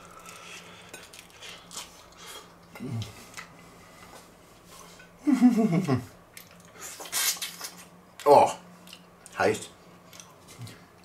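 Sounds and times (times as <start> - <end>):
person chewing crunchy food: 0.0 - 3.6
person humming mm: 2.7 - 3.2.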